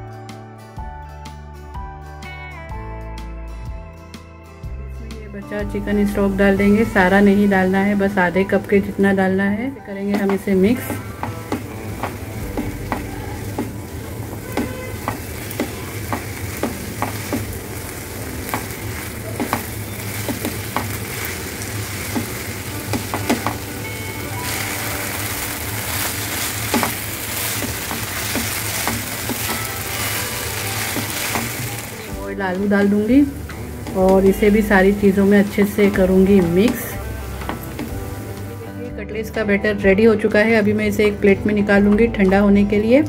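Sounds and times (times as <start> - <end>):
food sizzling in frying pan: 5.7 - 9.3, 9.9 - 38.8
spatula scraping and tapping pan: 10.0 - 32.2, 33.4 - 38.4.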